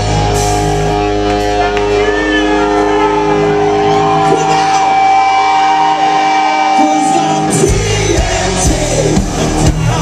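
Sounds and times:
live hard rock band playing: 0.0s - 10.0s.

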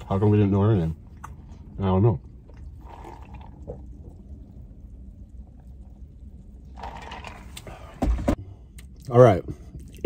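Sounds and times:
low steady hum: 0.0s - 10.0s
sipping and swallowing a drink: 1.1s - 7.9s.

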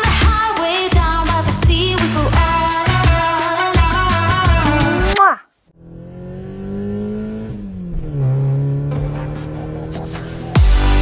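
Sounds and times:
car engine running: 5.8s - 11.0s.

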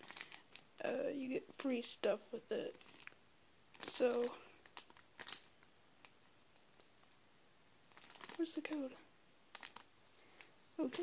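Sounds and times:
plastic bag crinkling: 0.0s - 0.8s, 2.7s - 7.2s, 7.9s - 8.9s, 9.5s - 11.0s.

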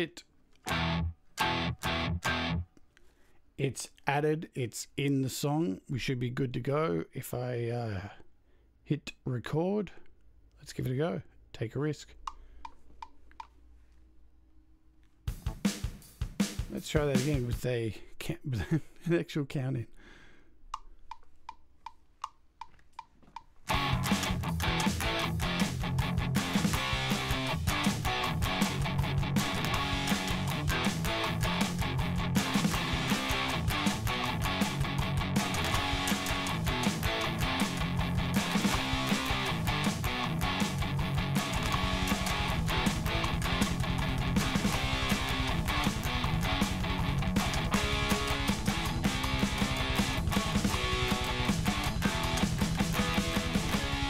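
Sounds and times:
metronome clicks: 0.6s - 2.6s, 12.2s - 13.6s, 20.7s - 54.0s
electric guitar: 0.6s - 2.7s, 23.7s - 54.0s
backing track with drums: 15.2s - 17.8s, 23.0s - 54.0s.

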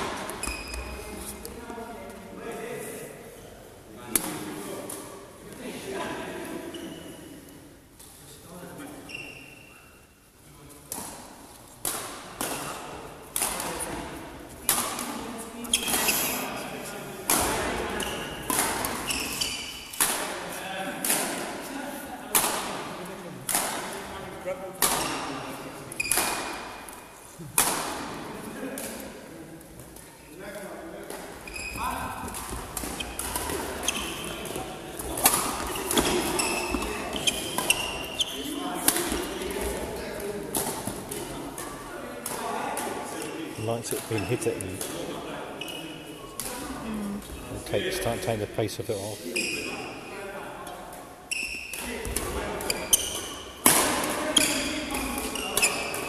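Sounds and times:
sports shoes squeaking: 0.3s - 1.2s, 6.6s - 7.4s, 9.0s - 10.0s, 15.6s - 16.5s, 18.0s - 20.0s, 25.9s - 26.3s, 31.4s - 38.6s, 45.6s - 46.0s, 49.2s - 50.0s, 51.3s - 51.9s, 52.6s - 53.6s, 54.3s - 56.0s.

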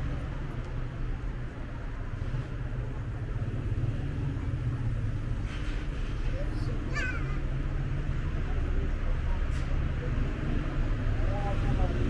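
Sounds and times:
road traffic rumble: 0.0s - 12.0s.

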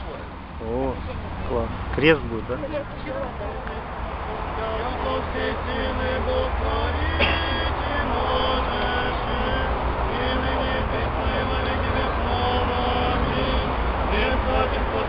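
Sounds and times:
crowd singing a chant: 2.8s - 15.0s.

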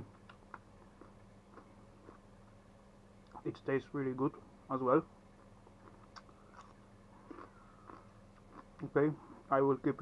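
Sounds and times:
crunchy chewing: 0.1s - 2.5s, 5.4s - 9.0s.

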